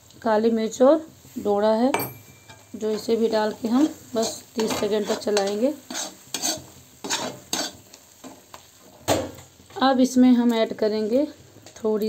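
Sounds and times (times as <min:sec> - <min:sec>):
faint sizzle: 0:00.0 - 0:12.0
spatula scraping metal pan: 0:02.6 - 0:08.0.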